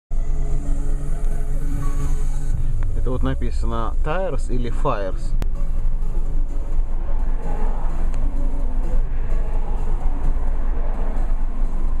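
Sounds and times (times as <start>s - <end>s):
vehicle engine and road noise: 0.1s - 12.0s.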